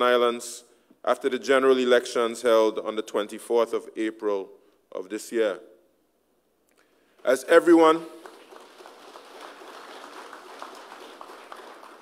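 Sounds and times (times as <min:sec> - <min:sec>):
audience applauding: 0:07.8 - 0:12.0.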